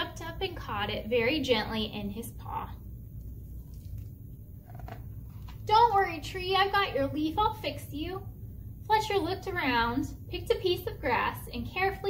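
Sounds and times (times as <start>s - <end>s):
low steady hum: 0.0s - 12.0s
book page turning: 3.2s - 5.7s.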